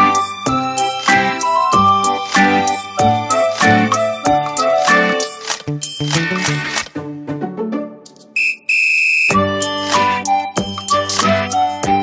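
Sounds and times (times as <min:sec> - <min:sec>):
music: 0:00.0 - 0:08.5, 0:09.3 - 0:12.0
high-pitched whistle blasts: 0:08.4 - 0:09.4.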